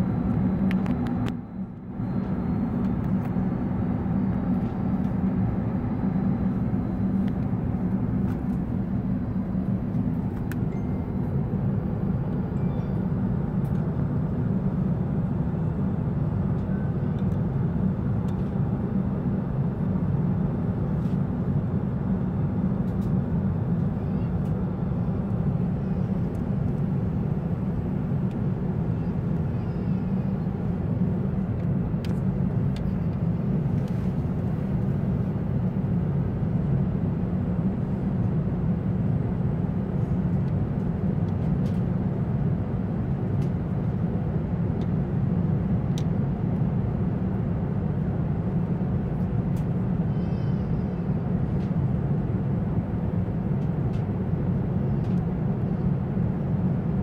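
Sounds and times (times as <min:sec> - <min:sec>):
airplane cabin engine rumble: 0:00.0 - 0:57.0.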